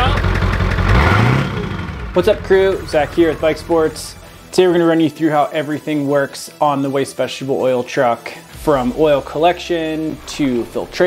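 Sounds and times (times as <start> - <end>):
diesel truck engine revving: 0.0 - 4.4.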